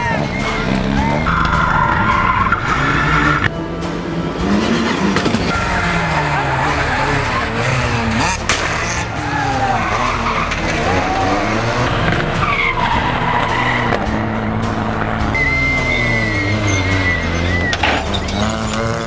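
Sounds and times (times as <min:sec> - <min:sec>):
high tyre squeal: 0:00.0 - 0:03.5, 0:04.5 - 0:19.0
rally car engines revving: 0:00.0 - 0:19.0.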